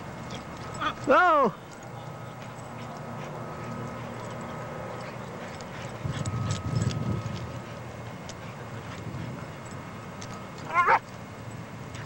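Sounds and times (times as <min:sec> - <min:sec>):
dog barking: 0:10.7 - 0:11.0.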